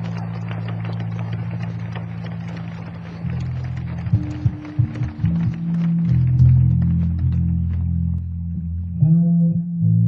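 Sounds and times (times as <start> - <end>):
low electric bass notes: 3.4 - 10.0.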